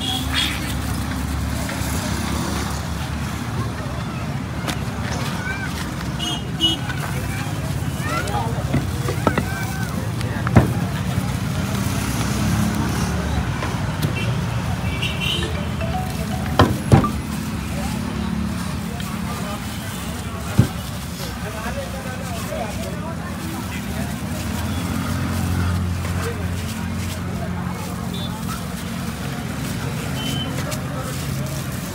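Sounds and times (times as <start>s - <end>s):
distant chatter: 0.0s - 31.9s
traffic hum: 0.0s - 31.9s.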